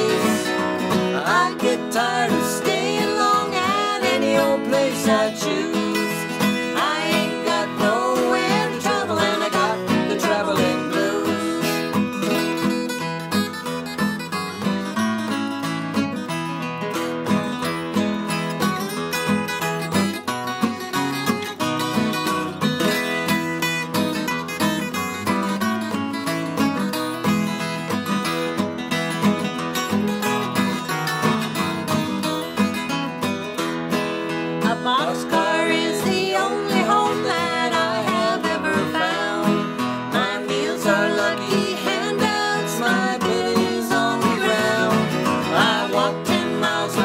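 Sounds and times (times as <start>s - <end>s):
acoustic guitars playing: 0.0s - 47.0s.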